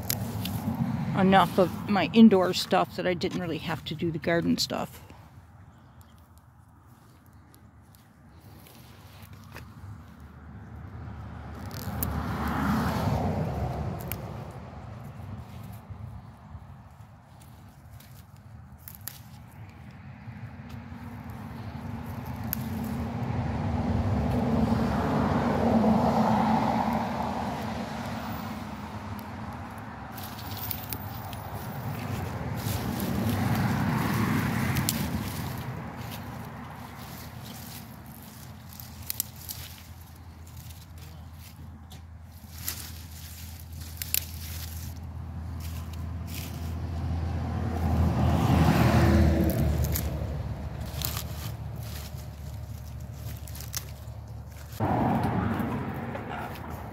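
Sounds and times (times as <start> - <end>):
vehicles passing: 0.0 - 56.9
plant leaves rustling: 16.8 - 19.8, 29.2 - 46.9, 49.4 - 56.9.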